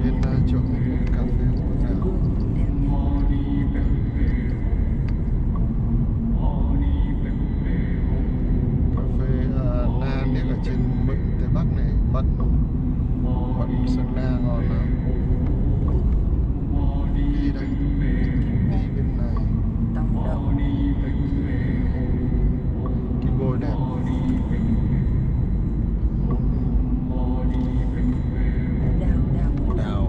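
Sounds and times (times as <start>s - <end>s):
people talking: 0.0s - 4.7s, 9.0s - 12.4s, 13.4s - 14.9s, 16.8s - 22.0s, 23.2s - 24.8s, 28.4s - 30.0s
car road and engine rumble: 0.0s - 30.0s.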